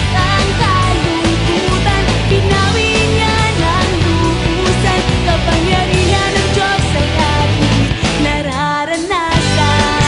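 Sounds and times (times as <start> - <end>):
amplified instrumental accompaniment: 0.0 - 10.0
person singing into a microphone: 0.0 - 10.0.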